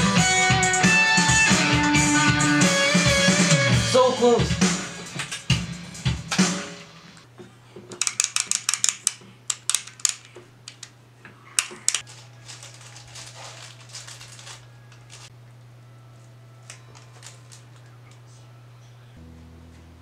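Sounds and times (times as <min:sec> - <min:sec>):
guitar hardware clicks and crackles: 0:07.9 - 0:10.9
steady low hum: 0:10.4 - 0:20.0.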